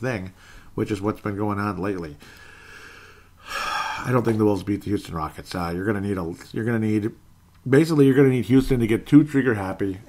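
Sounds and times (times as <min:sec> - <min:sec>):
man speaking: 0:00.0 - 0:02.2, 0:03.8 - 0:10.0
man breathing in: 0:00.4 - 0:00.7, 0:02.2 - 0:04.1.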